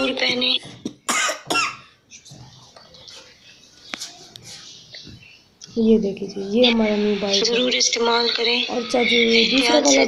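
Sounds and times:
person coughing: 1.1 - 2.0.

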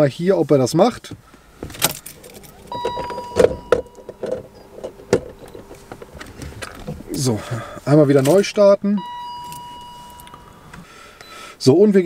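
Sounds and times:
car key jangling in ignition: 1.7 - 7.2, 8.2 - 10.9
electronic beep: 2.5 - 5.8, 9.0 - 11.4.

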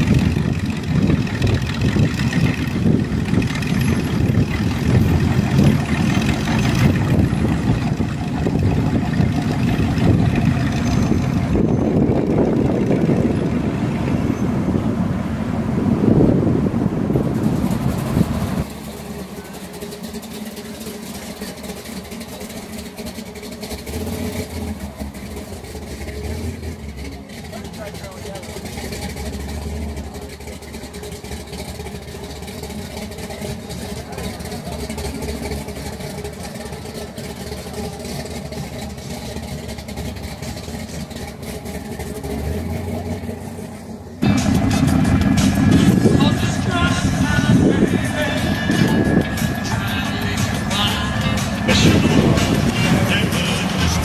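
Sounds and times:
car engines rumbling: 0.0 - 54.0
indistinct crowd chatter: 19.1 - 21.6, 26.8 - 39.3, 44.2 - 54.0.

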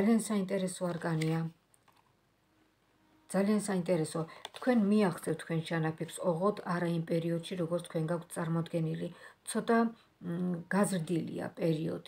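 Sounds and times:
woman speaking: 0.0 - 1.6, 3.3 - 12.0.

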